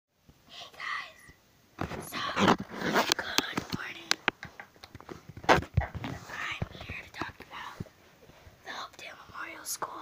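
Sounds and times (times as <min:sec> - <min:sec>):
child whispering: 0:00.5 - 0:01.4, 0:02.0 - 0:02.5, 0:03.2 - 0:04.2, 0:05.8 - 0:07.9, 0:08.6 - 0:10.0.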